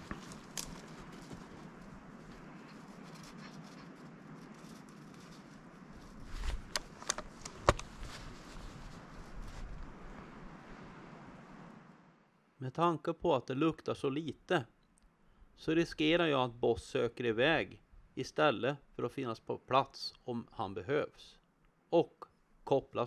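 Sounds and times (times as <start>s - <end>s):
faint rustling: 0.0s - 11.0s.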